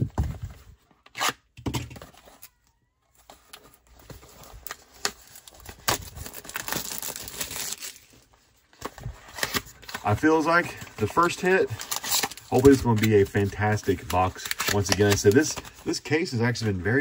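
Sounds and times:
plastic shrink wrap tearing: 4.6 - 8.1, 11.2 - 15.6.

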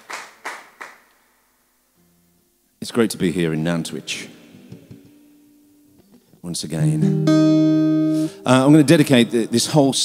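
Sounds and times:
hand claps: 0.0 - 1.2.

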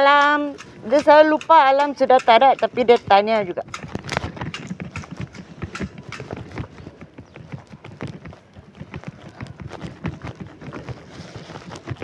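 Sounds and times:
footsteps on concrete: 0.0 - 12.0.

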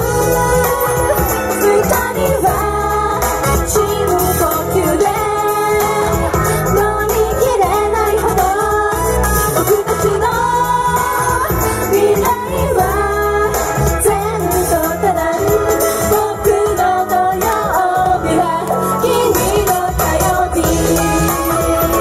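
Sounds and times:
pop accompaniment over speakers: 0.0 - 22.0
women singing into microphones: 0.0 - 22.0.

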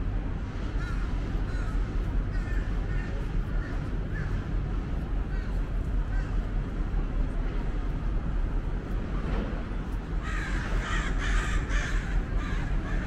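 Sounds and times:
low background rumble: 0.0 - 13.0
crow cawing: 0.8 - 4.4, 6.1 - 6.4, 10.2 - 13.0.

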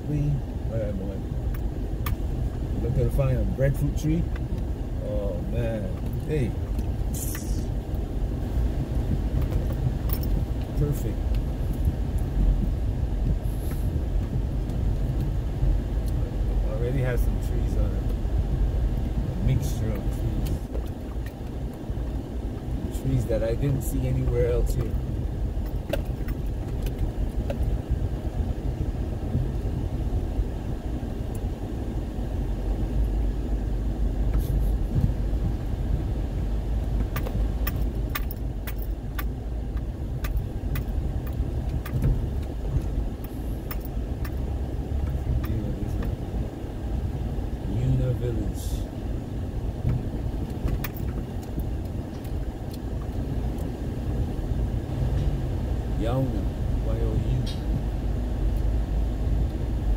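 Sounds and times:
car engine and tyres rumbling: 0.0 - 59.9
car rattling and knocking: 23.5 - 27.8, 36.9 - 46.6, 49.7 - 53.6.

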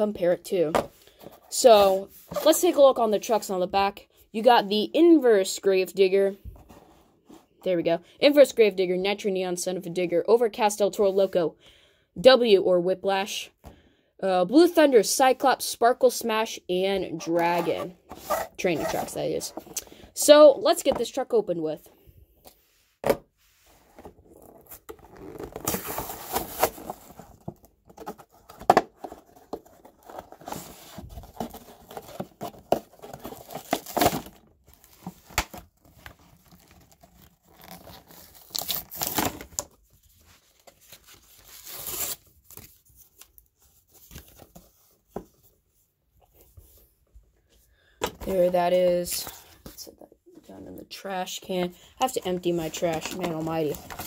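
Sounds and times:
blister pack tearing and crinkling: 36.3 - 39.7.

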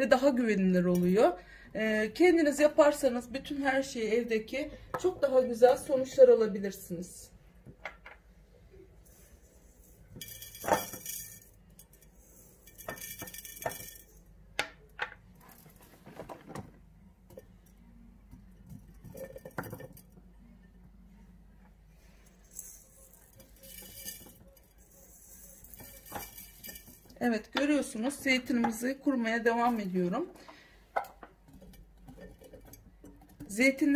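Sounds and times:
olives clinking against glass jar: 10.2 - 12.1, 12.7 - 14.2, 22.5 - 27.2.

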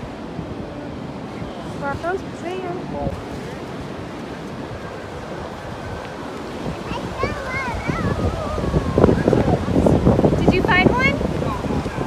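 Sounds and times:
ocean surf breaking: 0.0 - 12.0
wind buffeting microphone: 0.0 - 12.0.

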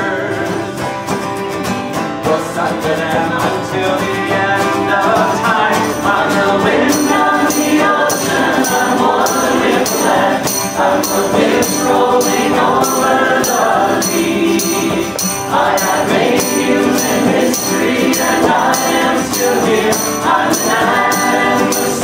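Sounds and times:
voices singing together: 0.0 - 0.9, 2.2 - 22.0
acoustic guitar: 0.0 - 22.0
tambourine shaken: 5.2 - 22.0
frame drum: 12.7 - 22.0.

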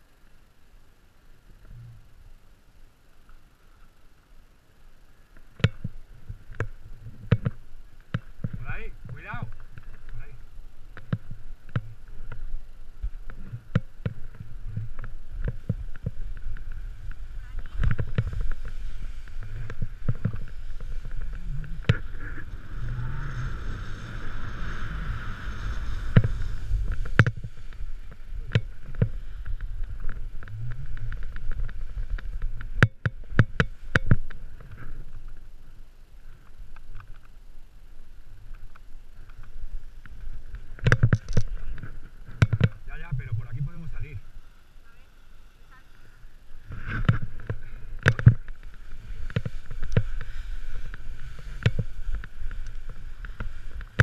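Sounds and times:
snowboard sliding through snow: 6.2 - 36.7, 41.6 - 54.0
wind on microphone: 11.1 - 35.2.

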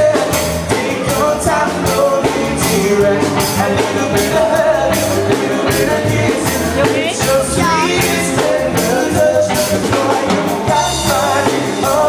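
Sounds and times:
drum kit: 0.0 - 12.0
electric bass: 0.0 - 12.0.

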